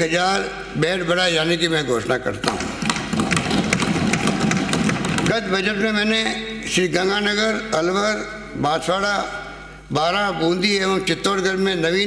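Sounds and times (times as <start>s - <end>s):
people thumping desks: 2.4s - 5.6s.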